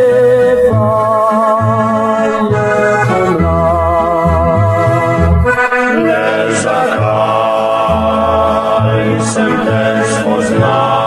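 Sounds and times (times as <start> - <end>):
bass line: 0.0 - 11.0
band song with singing: 5.9 - 11.0.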